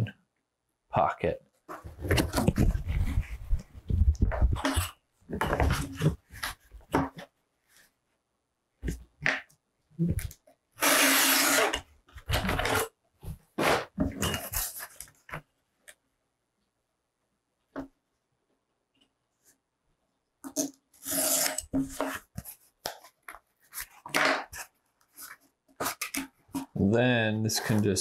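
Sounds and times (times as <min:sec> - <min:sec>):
craft knife scraping through cardboard: 0:21.0 - 0:22.6.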